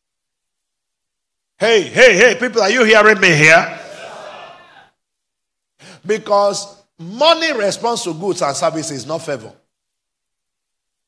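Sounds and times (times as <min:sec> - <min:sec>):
faint breath: 0:05.8 - 0:06.0.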